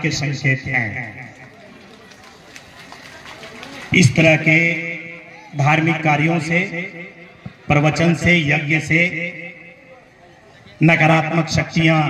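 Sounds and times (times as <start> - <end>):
man speaking through microphone: 0.0 - 1.5, 3.8 - 12.0
faint background noise of gathering: 0.0 - 12.0.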